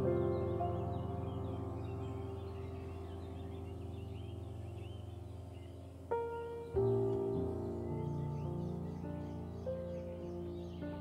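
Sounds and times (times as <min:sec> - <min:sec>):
bird chirps: 0:00.0 - 0:11.0
held keyboard chord: 0:00.0 - 0:11.0.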